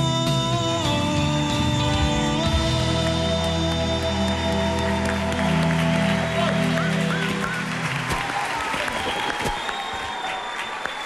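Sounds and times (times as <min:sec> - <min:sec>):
live band sustained chords: 0:00.0 - 0:08.1.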